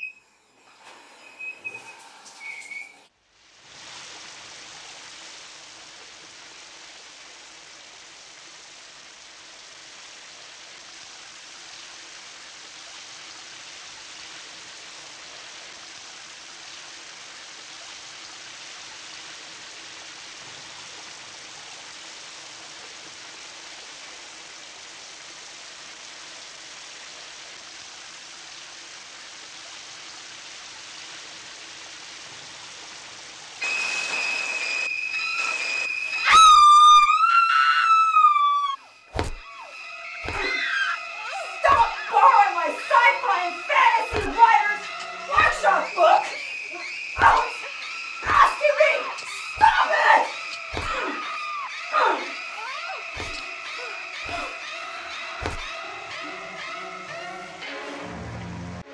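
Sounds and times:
shower spray on tile: 0:00.6 - 0:08.2, 0:31.1 - 0:36.4, 0:38.9 - 0:55.9
shrill falling shriek: 0:33.6 - 0:58.4.

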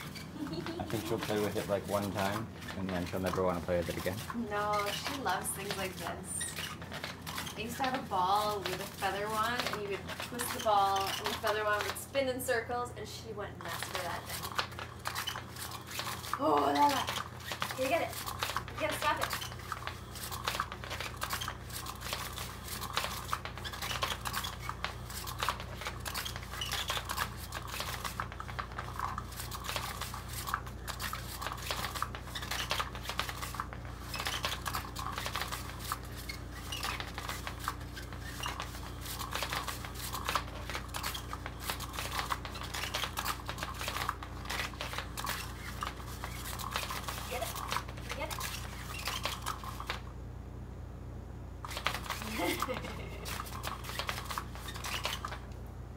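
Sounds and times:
rustling under nylon cover: 0:00.0 - 0:12.8, 0:13.5 - 0:50.1, 0:51.6 - 0:55.5
cat toy motor hum: 0:00.0 - 0:50.1, 0:51.6 - 0:55.6.

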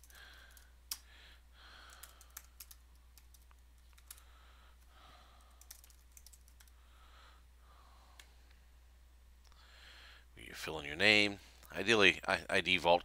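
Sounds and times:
typing on computer keyboard: 0:00.0 - 0:01.0, 0:01.8 - 0:04.2, 0:05.4 - 0:06.8
steady low hum: 0:00.0 - 0:12.6.

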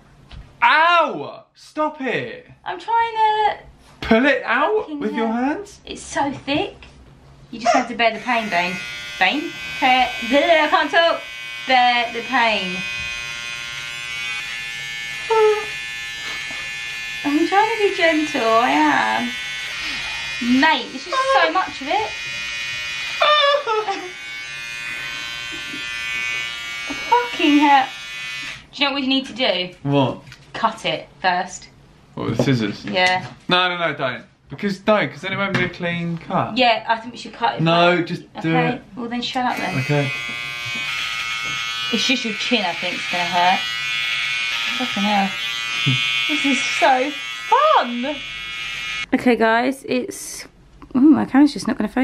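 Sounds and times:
electric beard trimmer buzzing: 0:07.8 - 0:28.7, 0:39.4 - 0:49.1.

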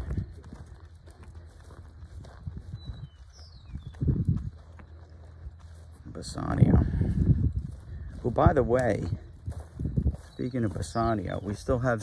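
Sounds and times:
horse hooves on dirt: 0:00.0 - 0:12.0
low outdoor hum: 0:00.0 - 0:12.0.

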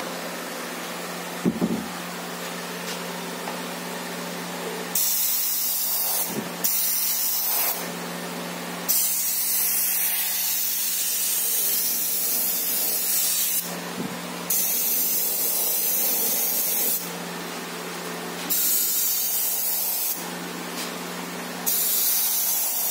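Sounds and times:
airbrush air hissing: 0:05.0 - 0:07.9, 0:08.9 - 0:13.7, 0:14.5 - 0:17.1, 0:18.5 - 0:20.2, 0:21.7 - 0:22.9.

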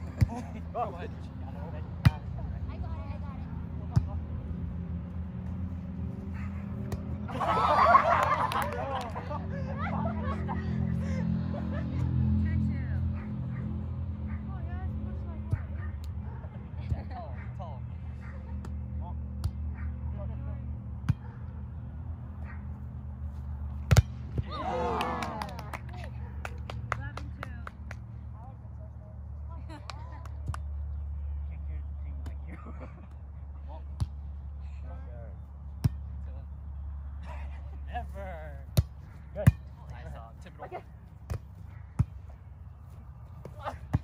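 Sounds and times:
volleyball being struck: 0:23.8 - 0:24.5.

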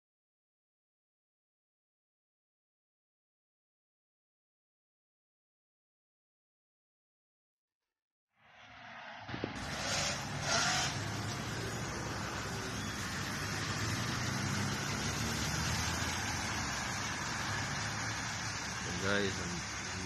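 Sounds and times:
traffic on wet road: 0:09.3 - 0:20.0.

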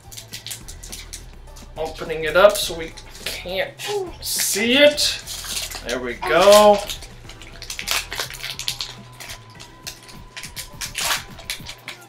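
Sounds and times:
foil wrapper crinkling: 0:00.0 - 0:03.4, 0:04.2 - 0:12.0.

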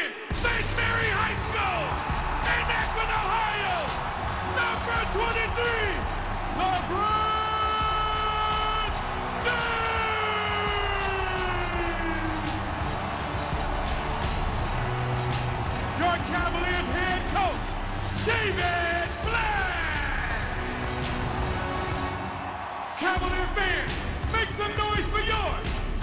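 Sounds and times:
announcer calling over pa: 0:00.0 - 0:01.7
crowd cheering: 0:00.0 - 0:26.0
music: 0:00.0 - 0:26.0.

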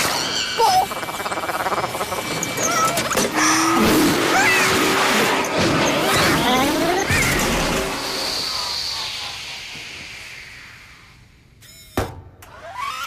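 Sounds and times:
rushing whirring noise: 0:00.0 - 0:11.6
warbling robotic chirps: 0:00.2 - 0:03.3.

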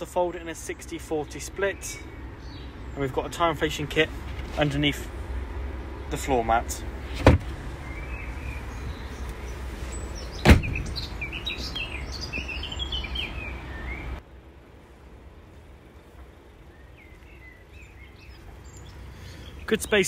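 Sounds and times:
birds chirping: 0:00.0 - 0:20.0
loud thud: 0:10.4 - 0:11.0
steady low rumble: 0:13.4 - 0:19.7.

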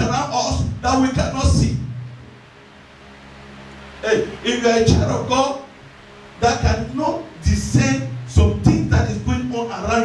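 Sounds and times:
faint hiss: 0:00.0 - 0:10.0
soft sustained low chords: 0:00.0 - 0:10.0.

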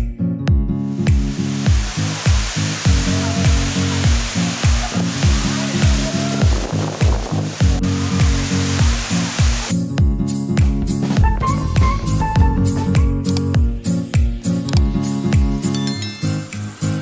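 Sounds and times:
music with deep kick drum: 0:00.0 - 0:15.7
falling water rushing: 0:01.0 - 0:09.8.

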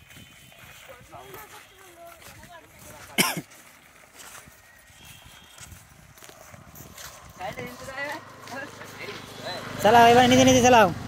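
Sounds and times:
footsteps on paved road: 0:00.0 - 0:10.2.

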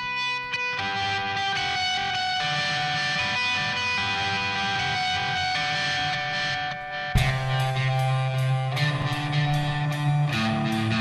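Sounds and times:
electric guitar chords ringing: 0:00.0 - 0:11.0.

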